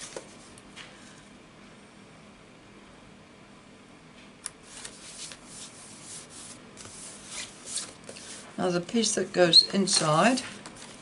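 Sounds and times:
hands rubbing paper card: 4.6s - 8.6s.

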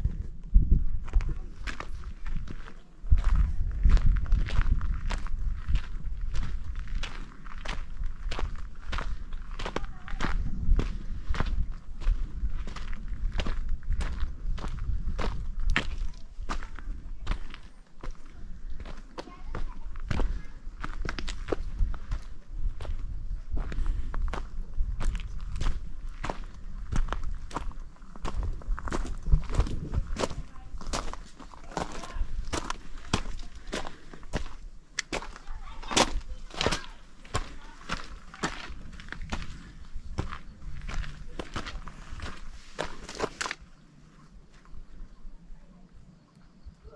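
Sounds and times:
low microphone rumble: 0.0s - 19.0s, 19.7s - 34.9s, 35.6s - 46.8s
boots crunching on gravel: 23.6s - 43.6s.

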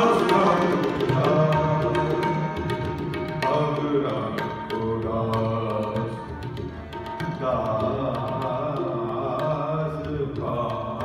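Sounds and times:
harmoniums holding notes: 0.0s - 10.7s
tabla strokes: 0.0s - 11.0s.

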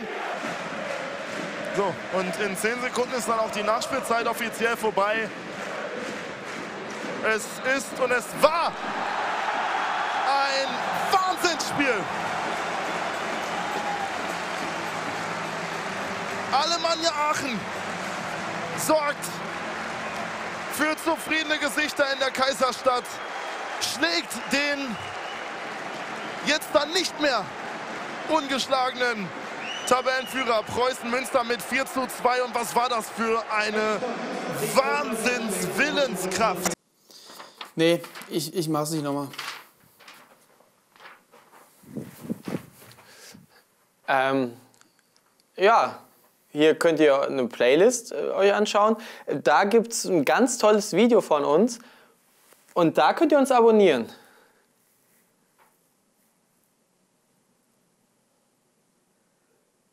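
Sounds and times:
stadium crowd cheering and clapping: 0.0s - 36.8s.

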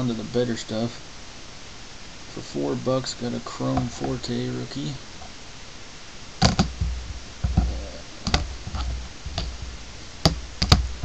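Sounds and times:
card holders thumping on desk: 6.4s - 9.6s, 10.2s - 11.0s.

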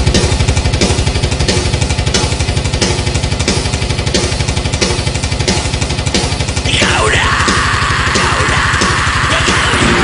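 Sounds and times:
fast kick-drum beats: 0.0s - 10.0s
distorted guitar: 6.4s - 10.0s.

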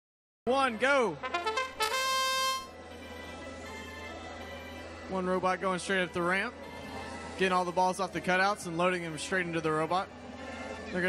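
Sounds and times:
trumpet-like fanfare: 1.2s - 2.8s.

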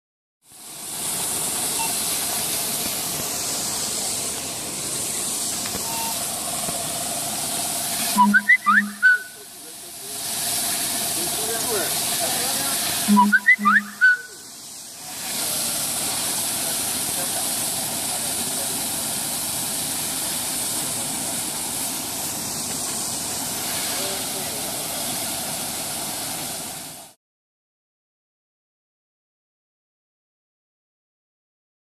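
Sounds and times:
fire hose spraying water: 0.4s - 27.2s.

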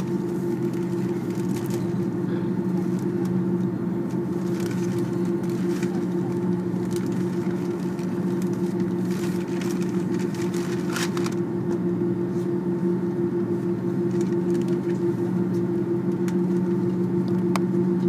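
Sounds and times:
jet engines idling hum: 0.0s - 18.0s.

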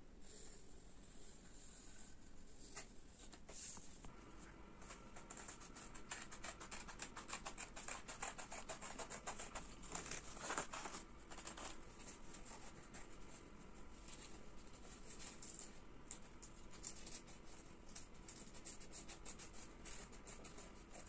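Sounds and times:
pencil scratching on paper: 0.2s - 3.8s, 4.8s - 21.0s
scissors snipping paper: 4.8s - 13.2s, 14.0s - 21.0s.

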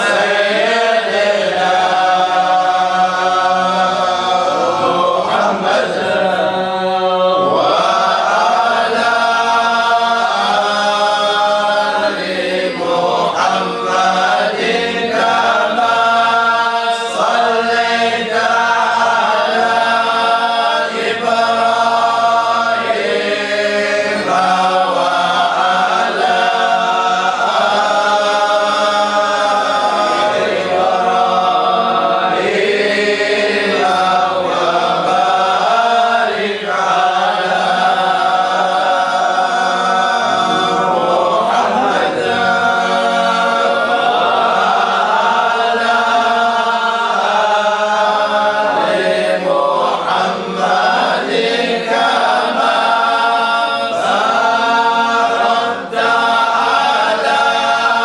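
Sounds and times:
group of voices chanting: 0.0s - 58.0s.

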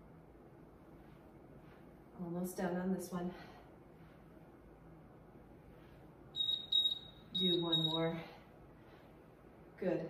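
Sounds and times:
interval timer beeping: 6.4s - 8.2s.

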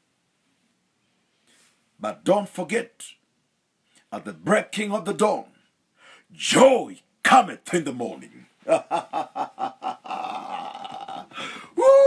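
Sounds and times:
man laughing: 8.6s - 12.0s
man's hoarse woo exclamation: 11.8s - 12.0s.

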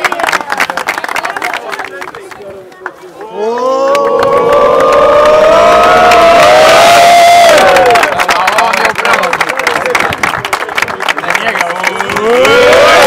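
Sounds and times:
people clapping: 0.0s - 13.0s
men cheering: 3.2s - 8.2s, 11.9s - 13.0s.

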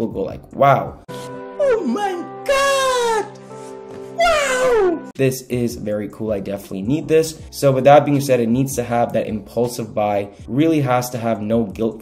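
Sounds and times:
backing music: 1.1s - 12.0s
man exclaiming: 1.6s - 3.4s, 4.2s - 5.1s.

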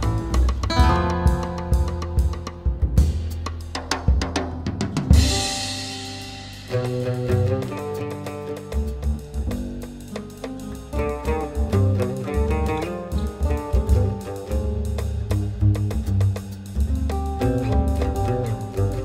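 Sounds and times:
bass and melody instruments: 0.0s - 19.0s
drum kit fill: 0.0s - 19.0s
cymbal crash: 5.1s - 7.6s.

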